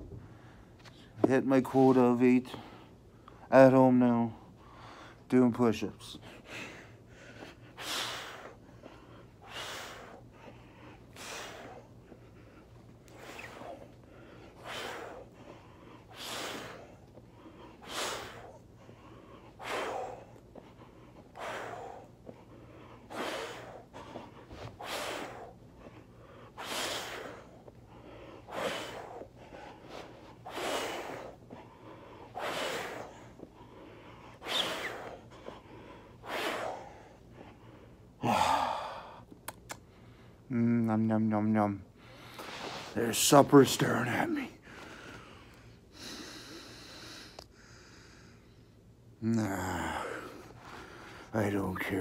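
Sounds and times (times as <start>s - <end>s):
man breathing hard: 4.3s - 5.3s, 6.1s - 39.3s, 43.8s - 51.9s.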